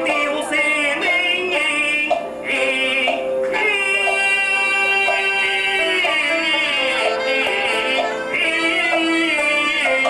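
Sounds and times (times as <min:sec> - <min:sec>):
opera singing: 0:00.0 - 0:10.0
traditional instrumental accompaniment: 0:00.0 - 0:10.0.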